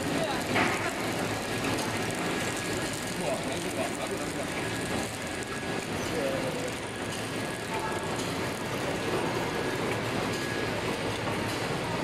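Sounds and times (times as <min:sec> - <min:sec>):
packing machine running: 0:00.0 - 0:12.0.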